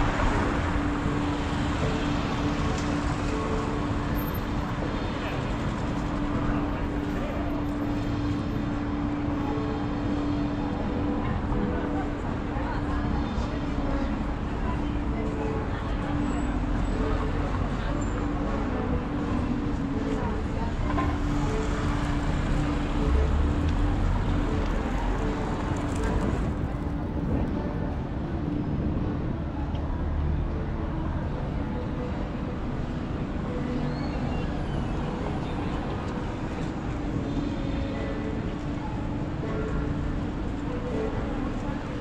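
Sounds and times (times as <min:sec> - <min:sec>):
city street traffic: 0:00.0 - 0:42.0.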